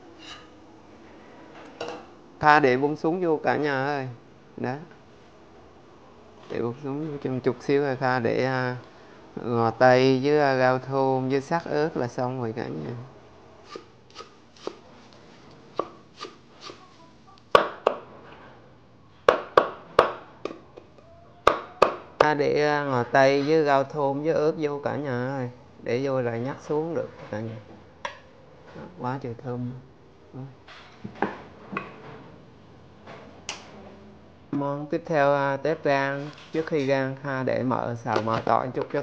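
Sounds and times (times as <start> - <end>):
knife chopping on wooden board: 13.7 - 14.8, 15.8 - 16.8, 17.5 - 18.0, 19.3 - 20.6.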